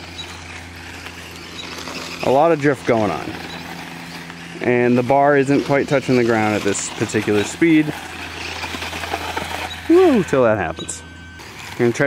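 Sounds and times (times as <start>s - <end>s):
tyre sliding over gravel: 0.6s - 10.5s.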